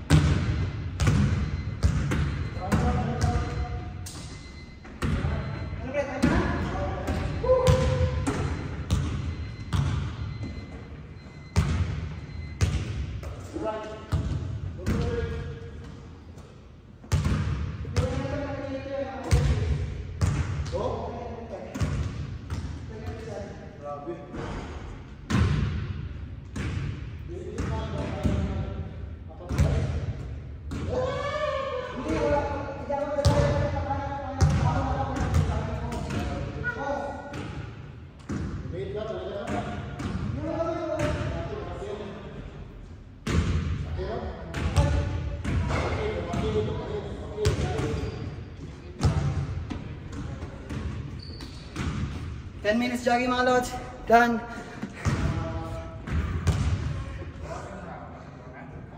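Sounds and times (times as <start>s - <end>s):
basketballs bouncing on hardwood floor: 0.0s - 3.6s, 6.2s - 10.3s, 17.1s - 18.3s, 34.4s - 36.4s, 49.0s - 52.3s, 54.7s - 57.0s.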